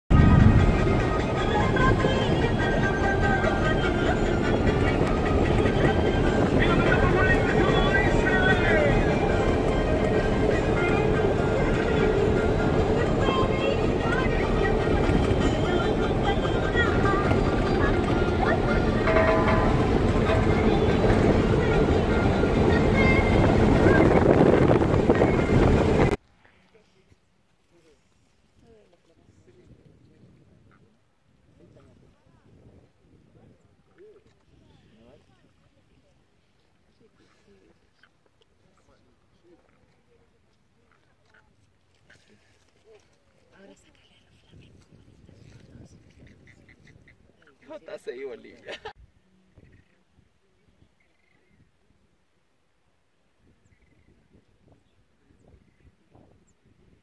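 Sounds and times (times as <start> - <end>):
engine and road noise in cabin: 0.1 - 26.2.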